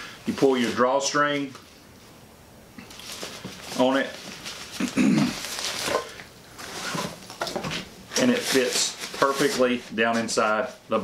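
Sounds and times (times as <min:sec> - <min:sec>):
nylon bag rustling: 0:02.9 - 0:07.3, 0:08.1 - 0:10.4.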